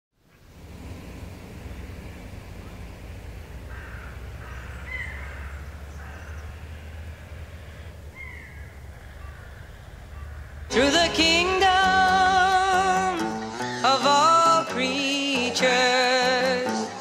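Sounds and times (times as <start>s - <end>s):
steady low city hum: 0.2s - 16.8s
crow cawing: 3.4s - 10.7s, 13.4s - 13.9s.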